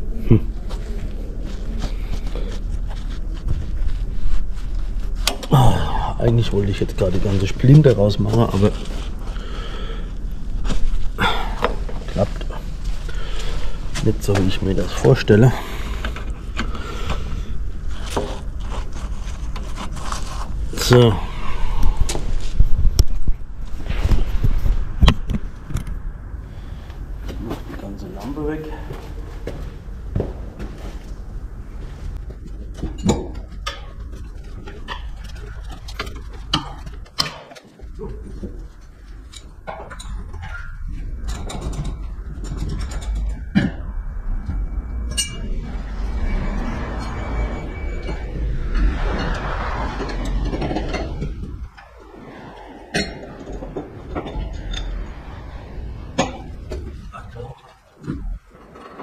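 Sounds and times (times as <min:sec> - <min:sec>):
steady low rumble: 0:00.0 - 0:37.2, 0:37.8 - 0:59.0.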